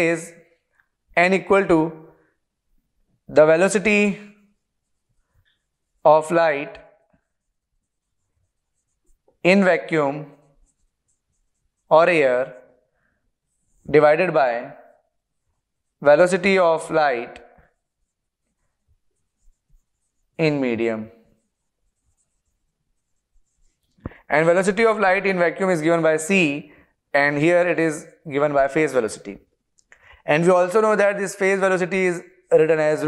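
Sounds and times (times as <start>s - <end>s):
marker pen squeaking on whiteboard: 4.1s - 25.2s.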